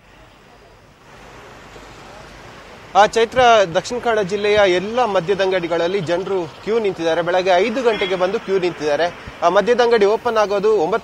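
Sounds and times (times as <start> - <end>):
street hiss: 0.0 - 11.0
wind: 0.0 - 11.0.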